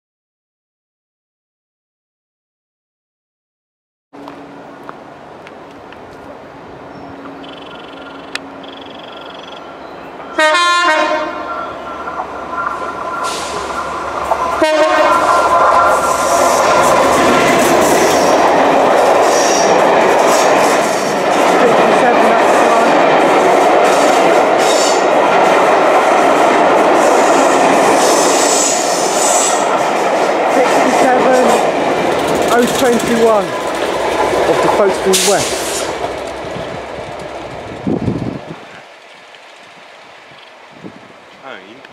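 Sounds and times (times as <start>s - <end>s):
train wheel and rail noise: 4.2s - 41.9s
locomotive horn blast: 10.3s - 11.9s, 14.5s - 16.2s.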